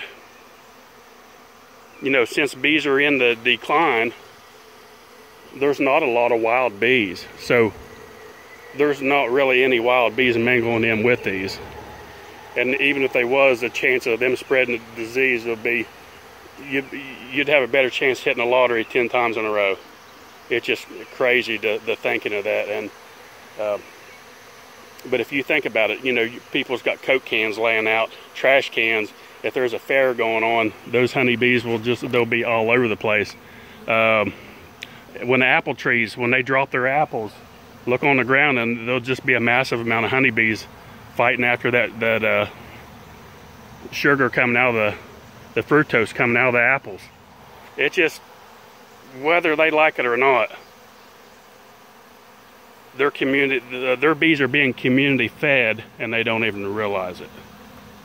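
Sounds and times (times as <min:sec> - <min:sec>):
bees buzzing: 0:00.0 - 0:58.0.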